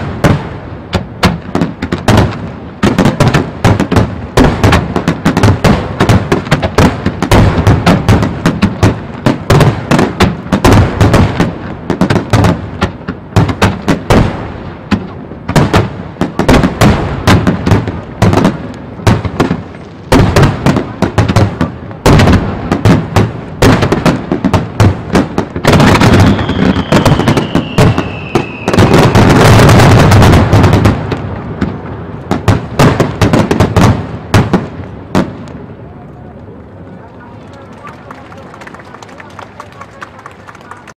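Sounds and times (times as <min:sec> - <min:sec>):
falling firework whistle: 0:25.9 - 0:29.6.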